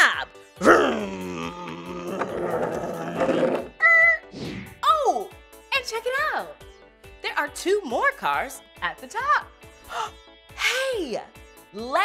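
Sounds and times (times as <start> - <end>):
children's background music: 0.0 - 12.0
toy car engine vroom: 1.8 - 3.7.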